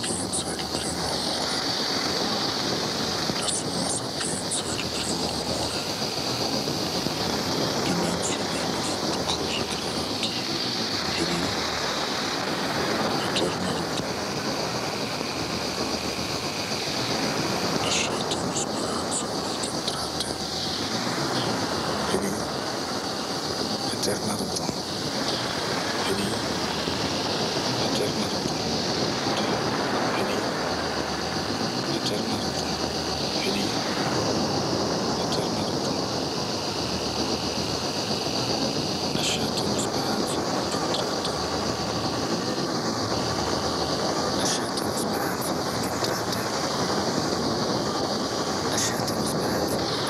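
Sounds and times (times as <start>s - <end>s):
constant high hiss: 0.0s - 50.0s
steady rushing noise: 0.0s - 50.0s.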